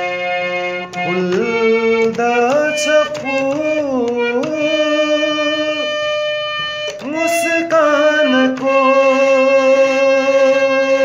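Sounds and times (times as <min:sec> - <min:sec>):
harmonium holding a note: 0:00.0 - 0:11.0.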